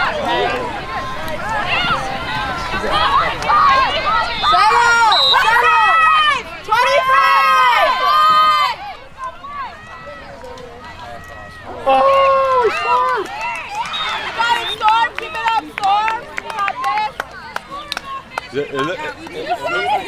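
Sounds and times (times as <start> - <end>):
girls chattering: 0.0 - 20.0
girls shouting and cheering: 0.0 - 20.0.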